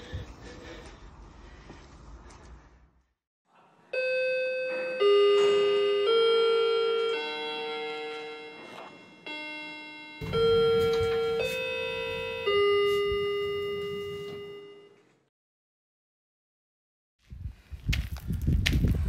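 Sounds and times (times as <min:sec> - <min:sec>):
bell-like chime tune: 0:04.0 - 0:15.0.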